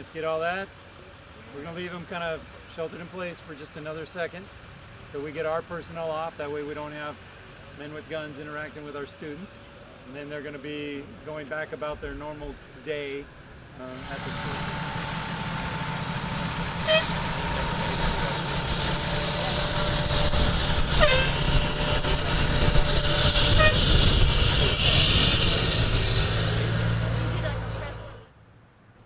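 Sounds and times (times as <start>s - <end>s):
fire engine diesel engine: 0.0s - 28.4s.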